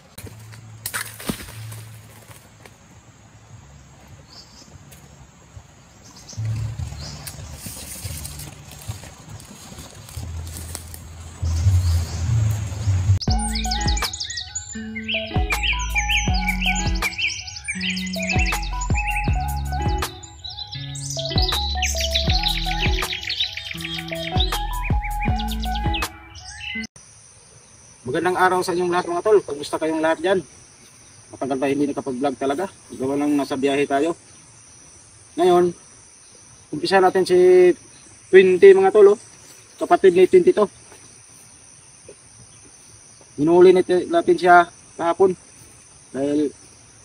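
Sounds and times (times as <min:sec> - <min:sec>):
background music with bass line: 0:06.4 - 0:07.6, 0:10.2 - 0:26.4
high bird chirps: 0:11.4 - 0:27.0.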